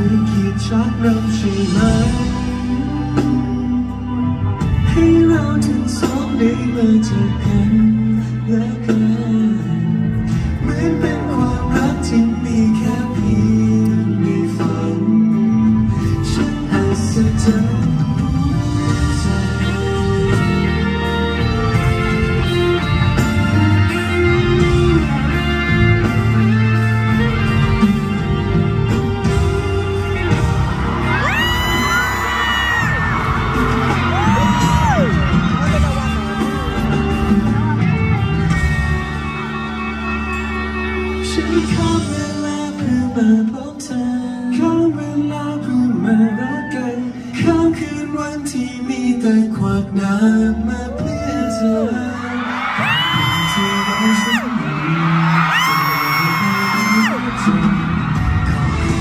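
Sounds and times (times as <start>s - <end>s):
live music with heavy bass beat: 0.0s - 59.0s
crowd screaming: 27.2s - 42.9s, 45.8s - 47.8s, 50.6s - 59.0s.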